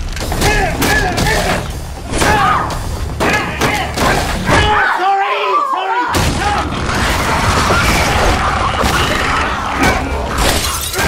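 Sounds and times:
people yelling and screaming: 0:00.3 - 0:11.0.

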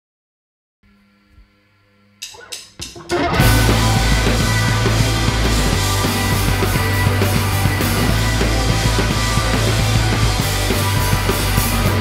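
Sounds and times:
punk rock band playing: 0:02.3 - 0:12.0
amplifier hum: 0:03.3 - 0:12.0.

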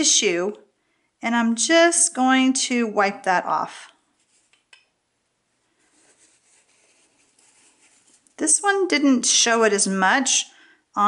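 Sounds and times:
tissue rubbing on stamp: 0:05.8 - 0:08.4.

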